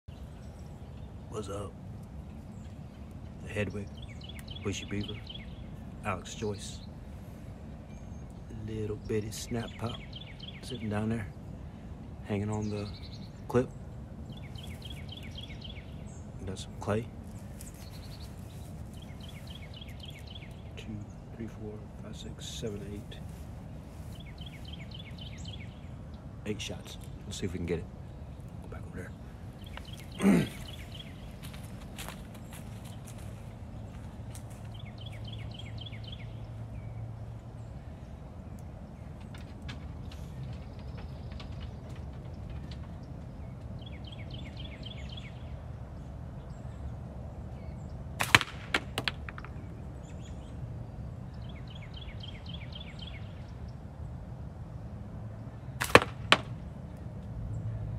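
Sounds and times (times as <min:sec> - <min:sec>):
bird chirping: 0:00.0 - 0:48.1, 0:49.1 - 0:57.9
low outdoor rumble: 0:00.1 - 0:57.9.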